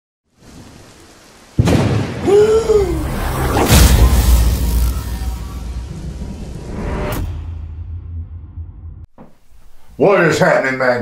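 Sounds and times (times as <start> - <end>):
soft rain: 0.2 - 3.6
loud thunderclap: 1.6 - 6.7.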